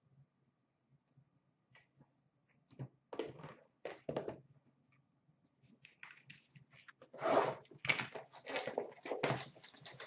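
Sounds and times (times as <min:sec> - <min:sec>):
plastic wrap crinkling: 0:07.7 - 0:10.0.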